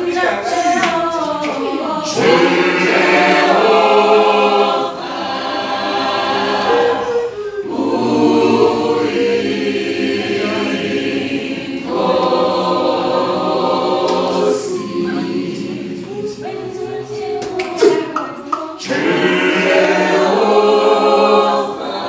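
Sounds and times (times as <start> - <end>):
choir singing unaccompanied: 0.0 - 22.0.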